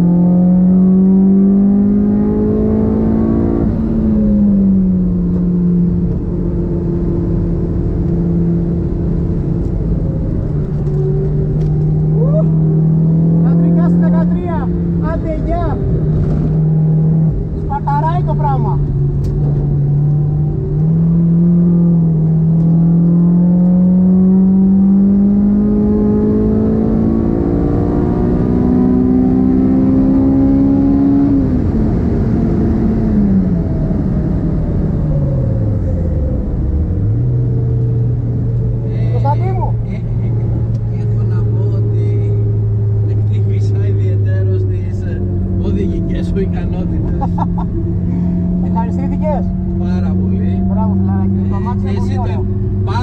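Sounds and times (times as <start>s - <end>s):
car engine accelerating: 0.0s - 53.0s
road noise: 0.0s - 53.0s.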